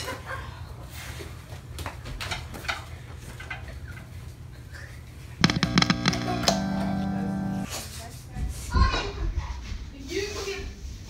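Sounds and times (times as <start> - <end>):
electric guitar notes: 5.4 - 7.7
low thumps: 5.4 - 7.7.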